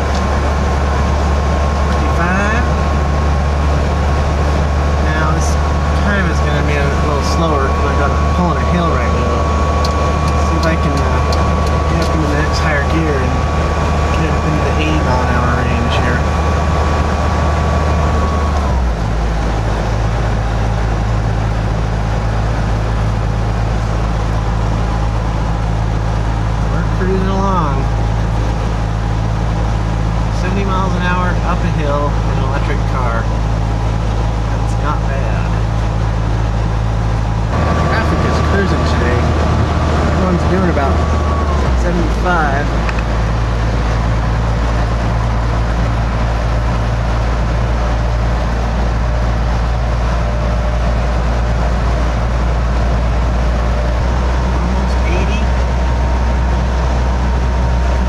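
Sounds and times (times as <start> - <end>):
road and wind rumble in cab: 0.0 - 58.0.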